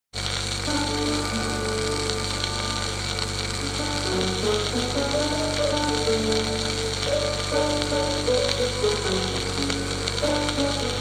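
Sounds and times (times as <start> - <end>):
record crackle and hiss: 0.1 - 11.0
low hum: 0.2 - 11.0
violin melody with piano: 0.7 - 11.0.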